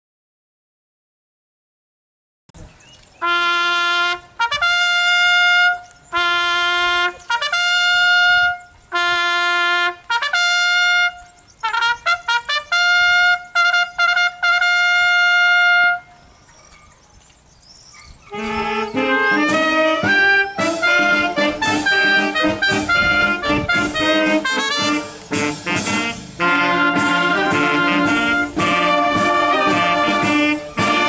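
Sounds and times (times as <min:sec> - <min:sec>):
solo trumpet signal call: 0:03.2 - 0:16.2, 0:18.3 - 0:31.0.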